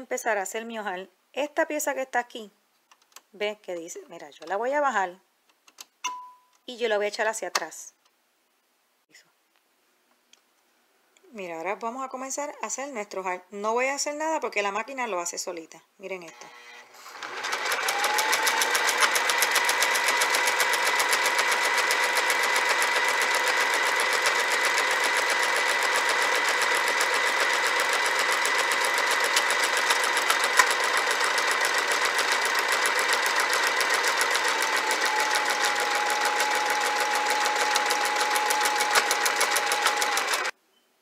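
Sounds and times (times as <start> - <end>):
sewing machine motor whine: 16.4 - 40.5.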